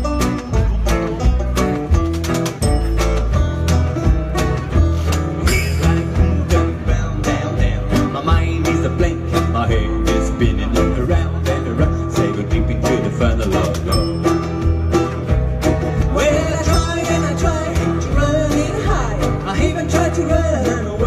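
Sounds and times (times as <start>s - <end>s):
acoustic guitars strummed and picked: 0.0s - 21.0s
banjo: 0.0s - 21.0s
double bass slapping a beat: 0.0s - 21.0s.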